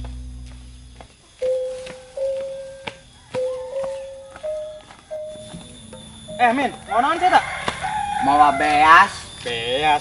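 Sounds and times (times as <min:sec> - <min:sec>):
melody of long held notes: 0:00.0 - 0:07.1.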